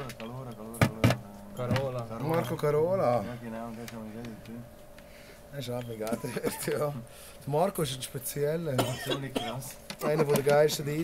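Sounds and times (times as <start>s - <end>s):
men talking: 0.0s - 11.0s
short cough: 8.8s - 10.2s.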